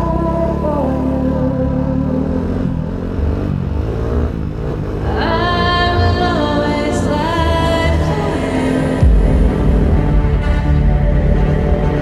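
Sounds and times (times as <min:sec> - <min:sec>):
snow bike engine running: 0:00.0 - 0:12.0
music: 0:05.2 - 0:12.0.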